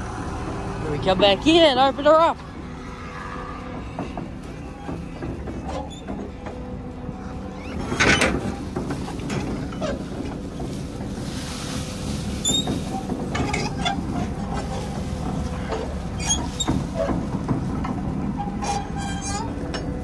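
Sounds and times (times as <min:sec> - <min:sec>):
feed wagon machine running: 0:00.0 - 0:20.0.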